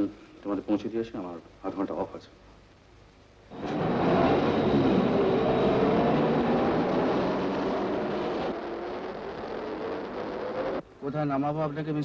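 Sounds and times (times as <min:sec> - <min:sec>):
car engine and road noise: 0:03.5 - 0:10.9.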